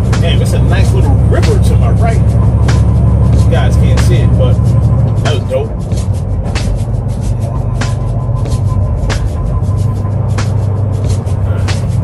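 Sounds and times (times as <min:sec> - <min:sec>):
music playing: 0:00.0 - 0:12.0
truck engine and road drone: 0:00.0 - 0:12.0.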